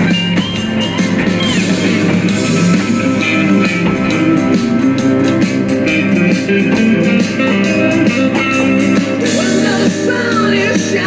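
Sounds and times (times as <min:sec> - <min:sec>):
drum beat: 0:00.0 - 0:11.0
rock music with electric guitar: 0:00.0 - 0:11.0.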